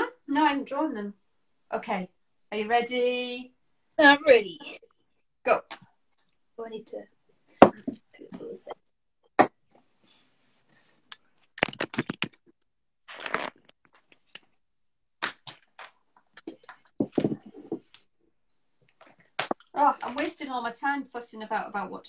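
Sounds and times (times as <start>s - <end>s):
pencils knocking on tabletop: 16.4s - 17.9s.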